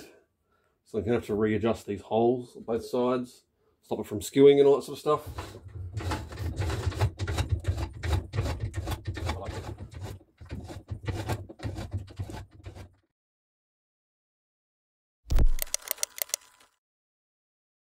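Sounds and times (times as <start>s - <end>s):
sharp clicks: 15.3s - 16.8s.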